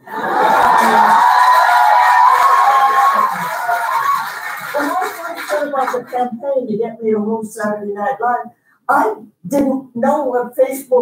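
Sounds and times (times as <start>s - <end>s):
audience laughing over loudspeakers: 0.0s - 1.3s.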